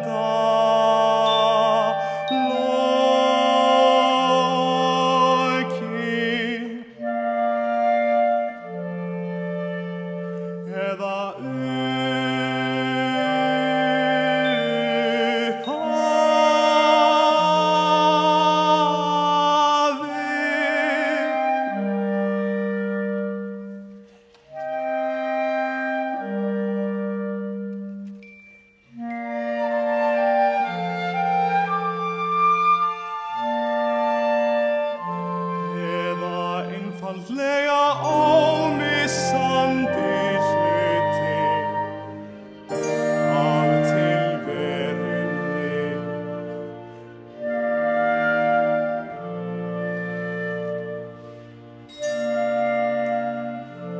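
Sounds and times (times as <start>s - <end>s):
tenor singing with vibrato: 0.0s - 23.0s, 28.9s - 53.9s
clarinets holding chords: 0.0s - 23.3s, 34.9s - 53.9s
chamber ensemble playing: 0.0s - 53.9s
loud held chord: 38.0s - 45.8s.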